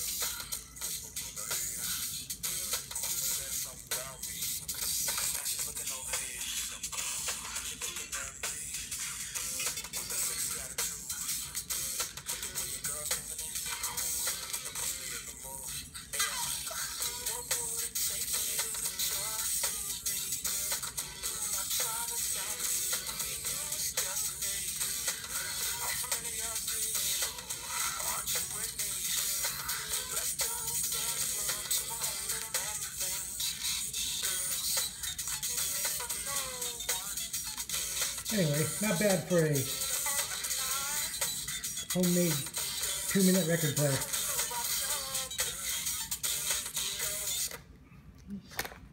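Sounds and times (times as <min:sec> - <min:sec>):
vinyl surface hiss and crackle: 0:00.0 - 0:47.7
thin low-fidelity record music: 0:00.0 - 0:47.8.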